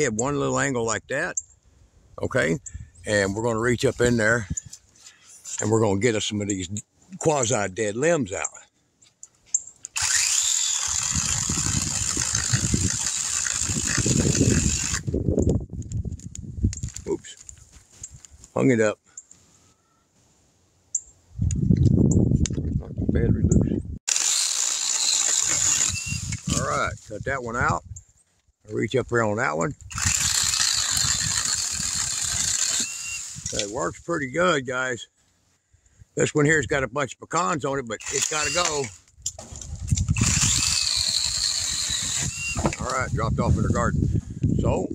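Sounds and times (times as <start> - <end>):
chainsaw chain rattle: 9.6 - 15.1, 24.1 - 26.8, 29.8 - 33.7, 38.0 - 43.0
pole saw whining and cutting: 9.9 - 15.1, 24.1 - 26.7, 29.9 - 33.7, 38.0 - 43.8.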